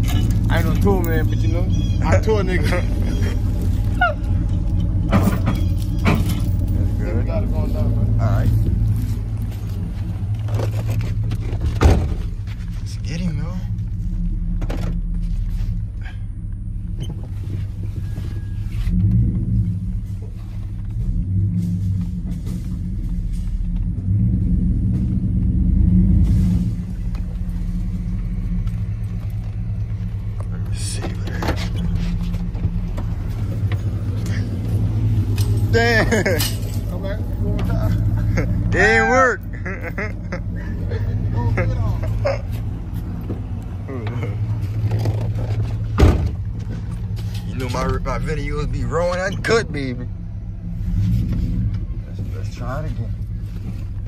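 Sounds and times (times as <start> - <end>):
truck engine revving: 0.0 - 54.0.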